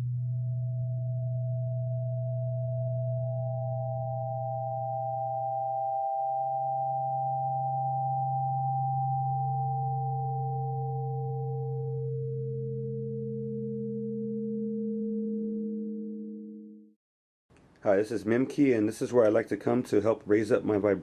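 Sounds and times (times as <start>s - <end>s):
low tone: 0.0s - 17.0s
pure sine tones: 0.0s - 17.0s.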